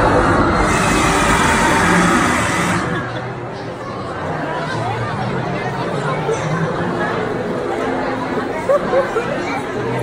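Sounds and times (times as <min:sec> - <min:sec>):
louder voices: 0:00.0 - 0:03.8
crowd chatter: 0:00.0 - 0:10.0.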